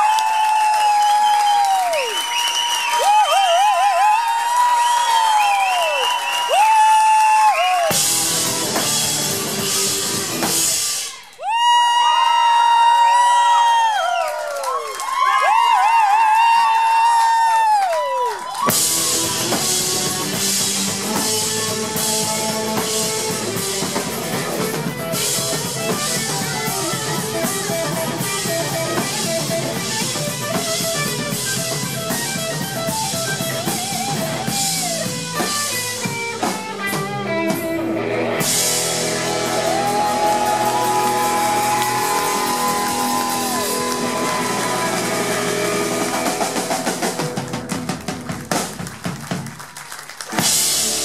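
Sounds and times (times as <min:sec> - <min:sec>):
live rock band playing: 0:06.3 - 0:11.3, 0:18.5 - 0:51.0.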